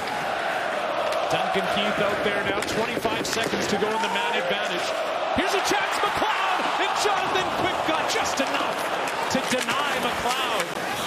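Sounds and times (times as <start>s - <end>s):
arena crowd noise: 0.0s - 11.0s
sticks and puck clacking on boards: 1.0s - 11.0s
man's voice: 1.3s - 10.8s.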